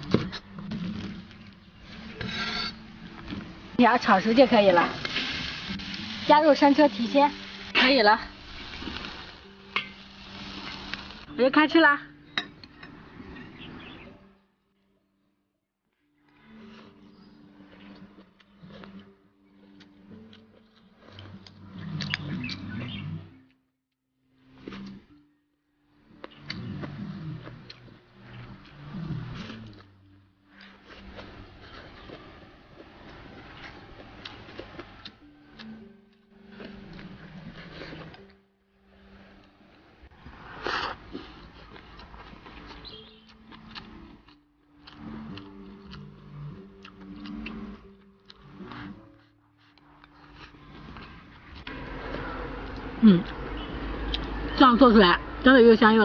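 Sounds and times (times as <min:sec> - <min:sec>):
chewing and slurping food: 0:26.2 - 0:38.3, 0:40.3 - 0:54.3.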